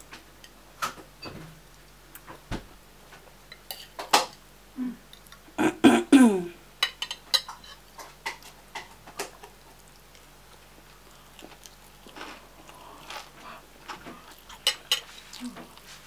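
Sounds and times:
cutlery clinking against bowl: 3.5 - 4.4, 6.8 - 9.3, 14.5 - 15.3
chewing: 7.5 - 16.0.

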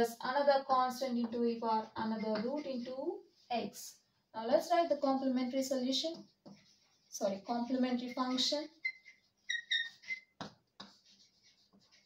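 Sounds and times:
chalk scratching on a blackboard: 5.6 - 12.0.

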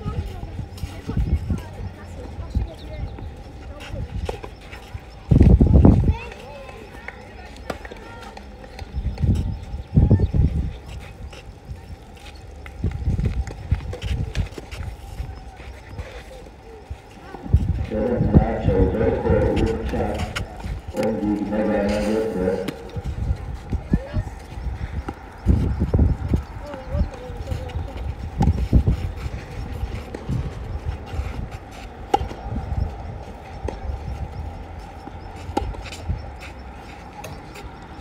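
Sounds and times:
wind buffeting microphone: 0.0 - 7.3, 8.7 - 38.0
footsteps on clay court: 0.0 - 38.0.

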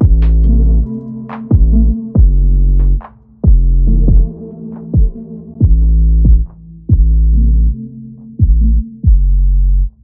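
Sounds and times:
deep bass kicks dropping in pitch: 0.0 - 0.9, 1.5 - 4.4, 5.0 - 7.8, 8.4 - 9.9
electronic music: 0.0 - 10.0.

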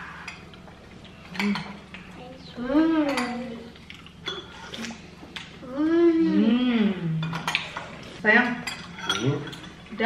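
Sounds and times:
spoons clinking on ceramic bowls: 8.6 - 9.8.

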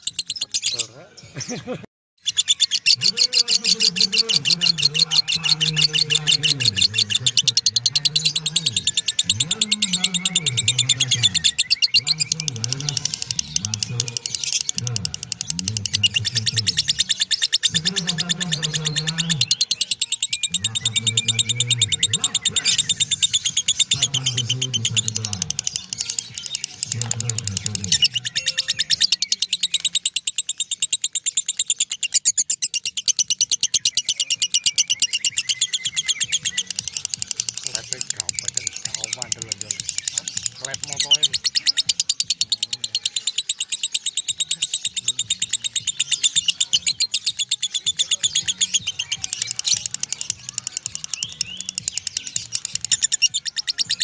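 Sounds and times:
lovebird chattering trills: 0.0 - 1.0, 2.2 - 54.0.

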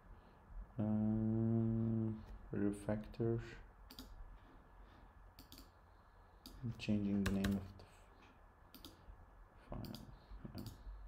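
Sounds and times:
faint computer clicks: 3.9 - 4.2, 5.4 - 5.8, 8.7 - 9.0, 9.7 - 10.8.

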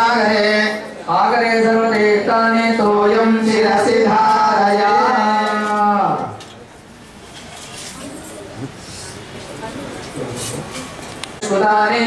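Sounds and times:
person chanting a hymn: 0.0 - 6.4, 11.4 - 12.0
faint room noise: 0.0 - 12.0.

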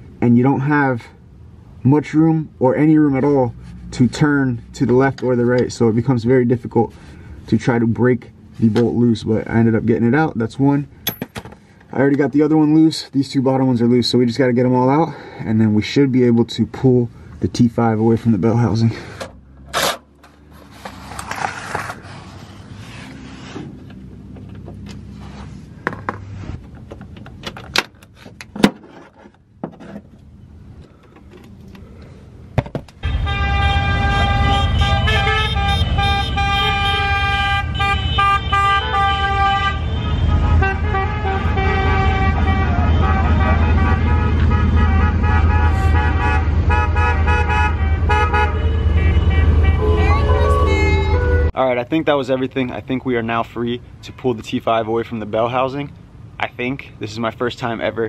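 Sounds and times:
vehicles driving past: 0.0 - 28.6, 29.3 - 58.0
car horns tooting: 33.0 - 51.6.

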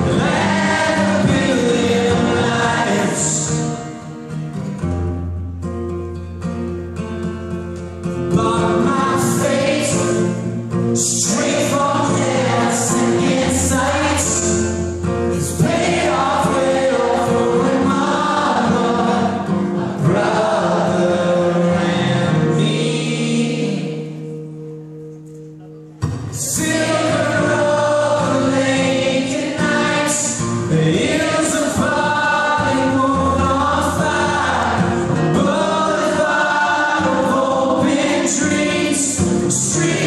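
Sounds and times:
man singing: 0.0 - 4.1, 8.3 - 24.0, 26.4 - 40.0
strummed acoustic guitar: 0.0 - 40.0.

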